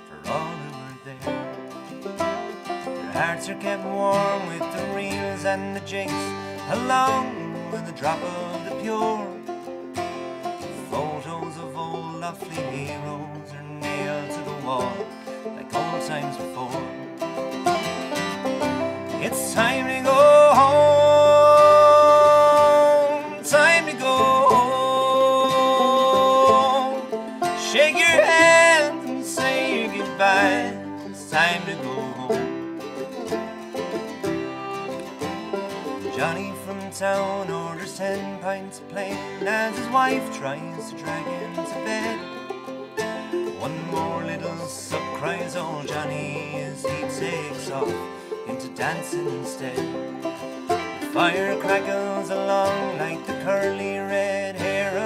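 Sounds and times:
acoustic guitar: 0.0s - 55.0s
banjo: 0.0s - 55.0s
fiddle: 0.0s - 55.0s
mandolin: 0.0s - 55.0s.

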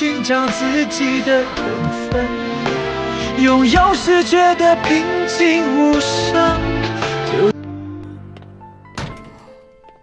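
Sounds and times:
soft background music: 0.0s - 10.0s
door shutting thud: 8.9s - 9.7s.

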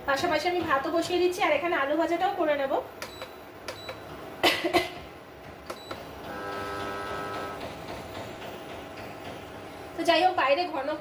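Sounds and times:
steady hum with faint whine: 0.0s - 11.0s.

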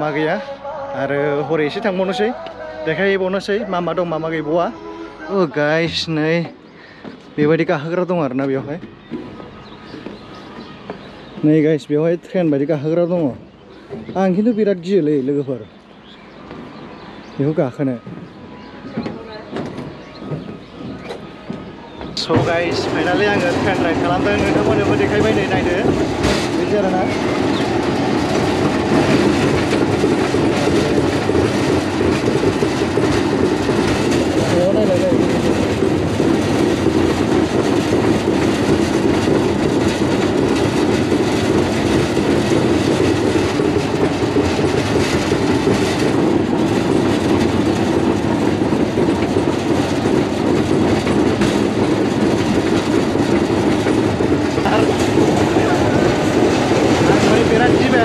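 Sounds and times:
ride train running along track: 0.0s - 58.0s
knocks from ride cars: 8.4s - 11.5s, 18.0s - 58.0s.

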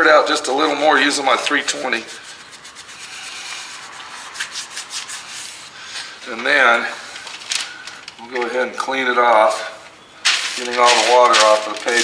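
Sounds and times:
sandpaper rubbing on paint: 1.1s - 6.1s, 10.4s - 12.0s.

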